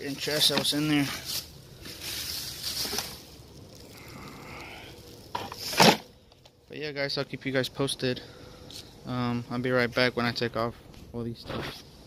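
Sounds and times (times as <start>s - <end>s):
plastic bag rustling: 0.0s - 6.1s.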